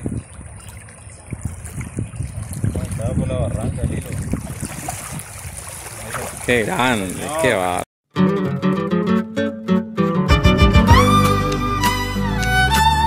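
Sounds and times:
wind rumbling on microphone: 0.0 - 7.2
light water splashes: 0.0 - 7.8
small waves lapping: 0.0 - 7.8.

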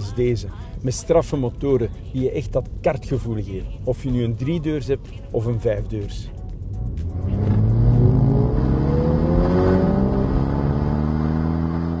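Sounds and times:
car engine accelerating: 6.6 - 12.0.

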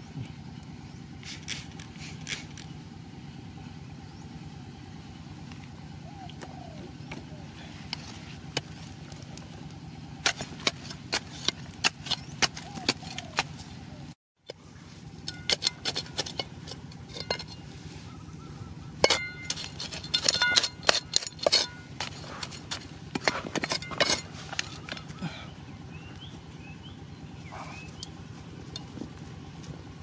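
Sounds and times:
steady low hum: 0.0 - 30.0
metal blade tapping stony soil: 10.2 - 13.6, 15.2 - 17.6, 19.0 - 25.1.

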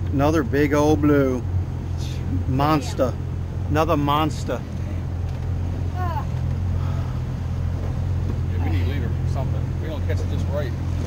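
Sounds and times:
boat engine idling: 0.0 - 11.0.

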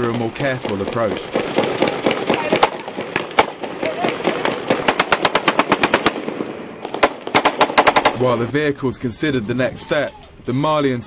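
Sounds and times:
automatic rifle gunfire: 0.7 - 8.2.

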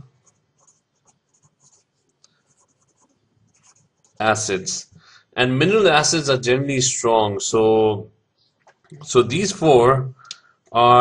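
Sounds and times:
pen scratching on paper: 0.2 - 4.3.

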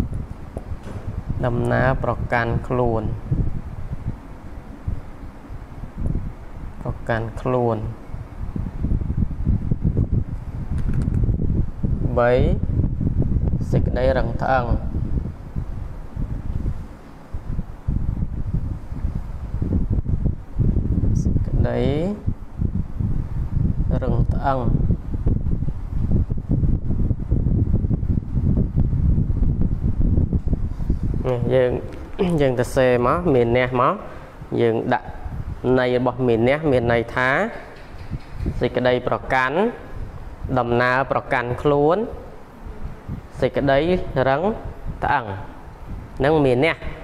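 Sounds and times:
low uneven background rumble: 0.0 - 47.0
wind buffeting microphone: 0.0 - 47.0.

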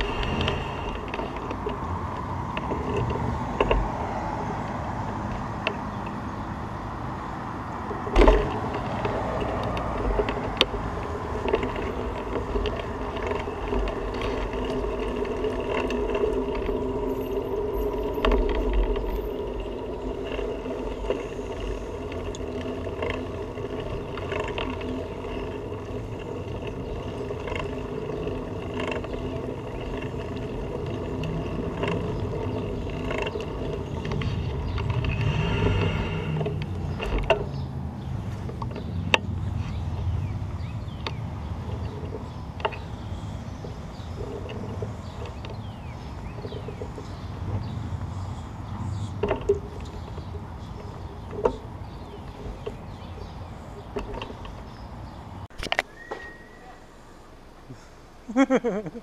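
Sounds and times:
sharp knocks and clicks: 0.0 - 6.2, 7.8 - 17.1, 17.9 - 37.8, 49.0 - 54.8
bicycle rolling over pavement: 0.0 - 57.6.

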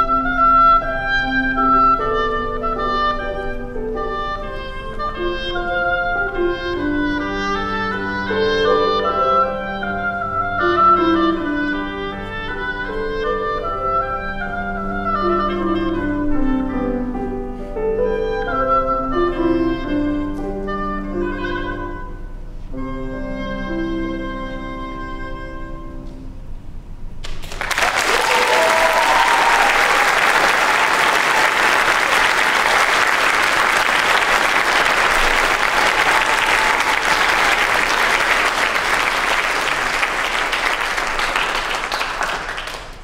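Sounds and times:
oboe melody: 0.0 - 26.5, 28.1 - 42.4
grand piano accompaniment: 0.0 - 43.0.

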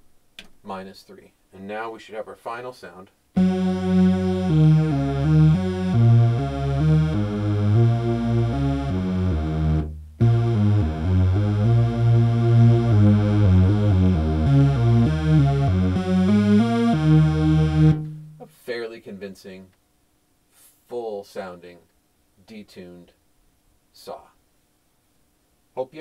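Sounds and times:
synthesizer playing a run of notes: 3.4 - 18.4.

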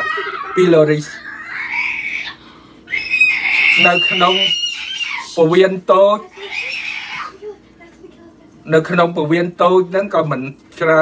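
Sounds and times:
man lecturing: 3.7 - 4.6.

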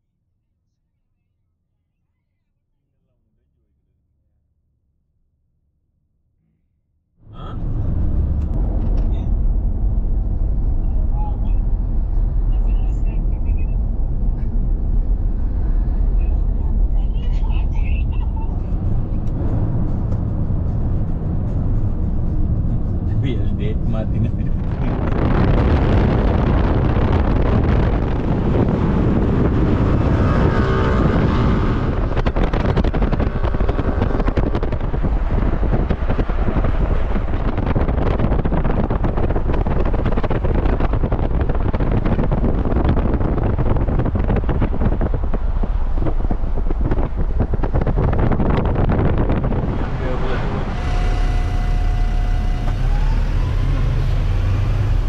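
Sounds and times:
car road and wind noise: 7.2 - 55.0
passing vehicle engine: 7.3 - 55.0.

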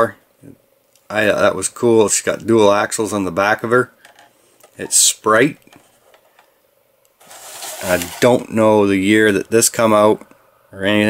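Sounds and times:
box rubbing and rustling: 7.2 - 8.5.

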